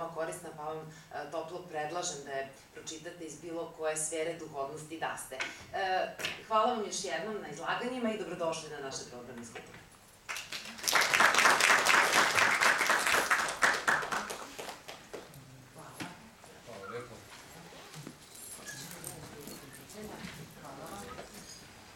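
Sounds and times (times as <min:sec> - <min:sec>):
audience applauding: 0:10.3 - 0:15.3.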